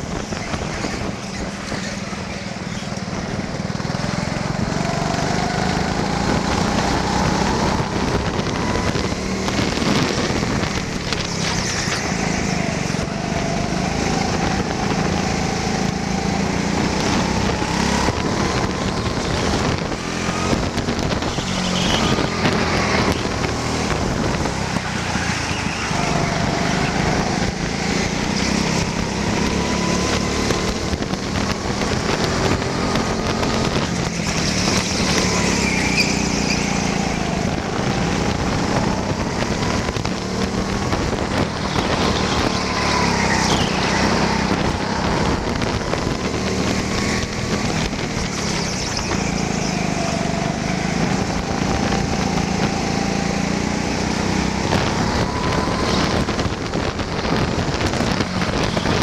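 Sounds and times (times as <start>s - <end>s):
wind noise on camera: 0.0s - 59.0s
kart motor revving: 0.6s - 59.0s.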